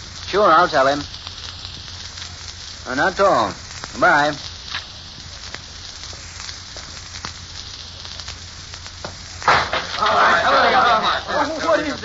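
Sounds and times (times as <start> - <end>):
recording surface hiss and crackle: 0.0 - 12.0.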